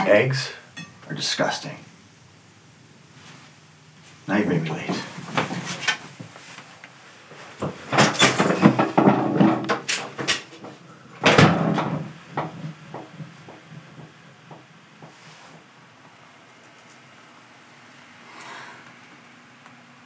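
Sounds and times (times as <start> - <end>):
door shutting: 7.6 - 13.2
door clattering knocks: 7.9 - 14.7.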